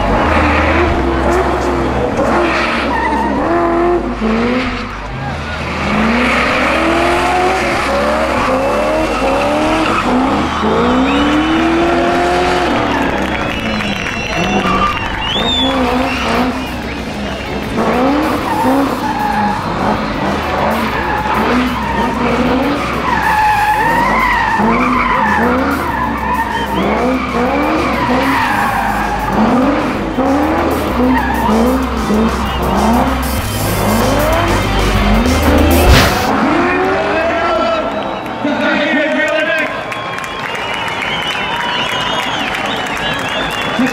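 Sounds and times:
car engine revving: 0.0s - 38.2s
music with bass line: 3.2s - 36.6s
tyres squealing: 5.1s - 36.3s
sharp crack: 35.3s - 36.4s.

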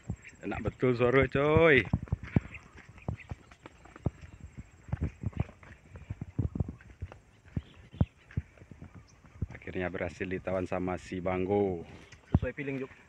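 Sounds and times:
footsteps on dry twigs: 0.0s - 13.0s.

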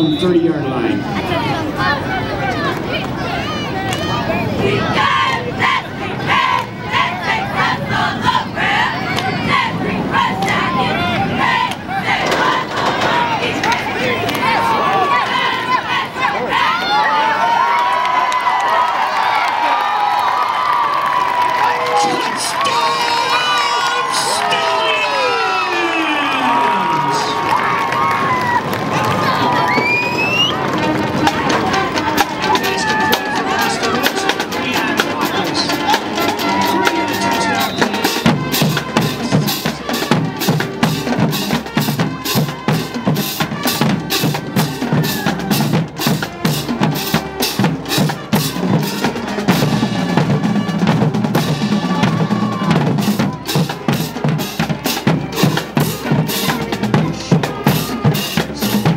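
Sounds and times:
crowd cheering and shouting: 0.0s - 58.9s
drums playing steady beat: 30.6s - 58.9s.

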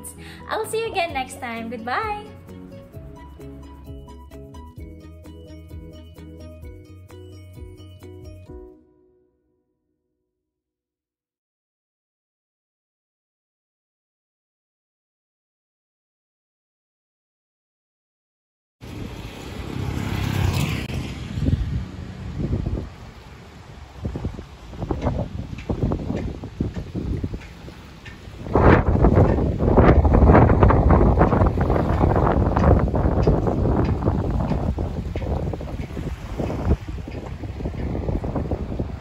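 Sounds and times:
wind buffeting microphone: 18.8s - 39.0s.

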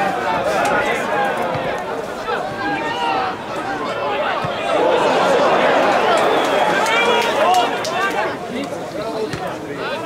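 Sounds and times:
stadium crowd chanting: 0.0s - 8.5s.

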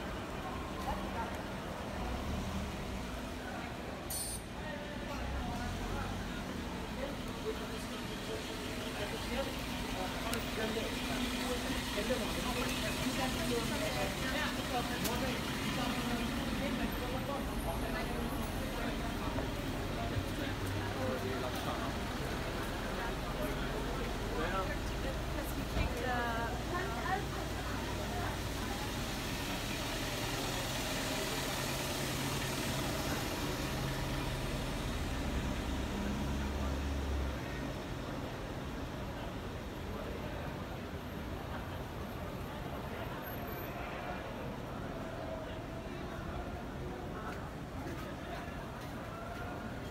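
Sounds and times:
bus engine idling: 0.0s - 49.9s
pedestrians chattering: 0.0s - 49.9s
street noise: 0.0s - 49.9s.

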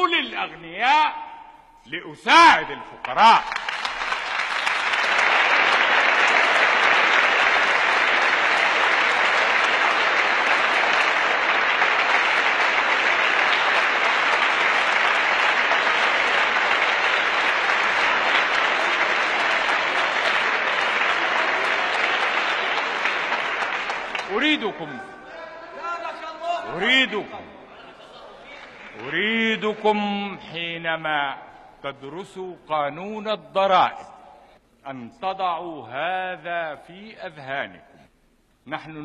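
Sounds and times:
crowd applause: 3.0s - 27.2s.

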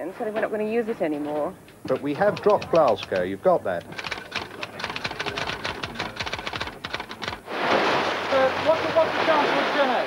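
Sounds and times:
fast typing on keyboard: 2.0s - 7.4s
sea surf rushing: 7.3s - 10.0s.

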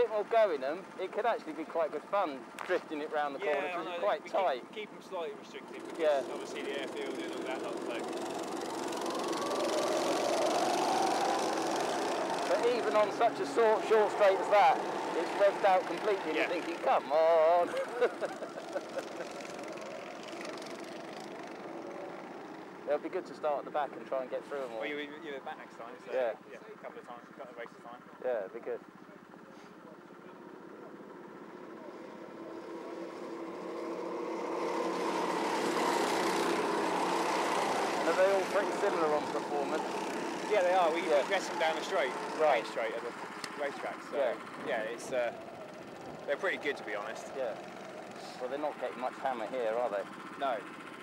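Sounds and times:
kart engines at high revs: 0.0s - 27.6s, 28.9s - 51.0s.

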